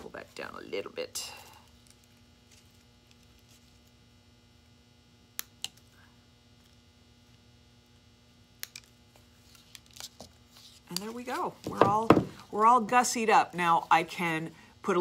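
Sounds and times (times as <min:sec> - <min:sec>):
steady electrical hum: 0:00.0 - 0:15.0.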